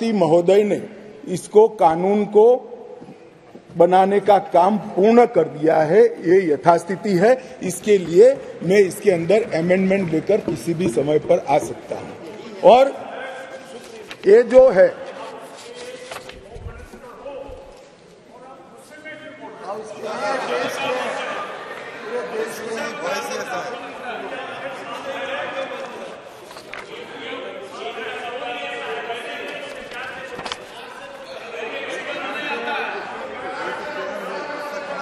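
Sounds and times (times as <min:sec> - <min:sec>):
person speaking: 0:00.0 - 0:21.4.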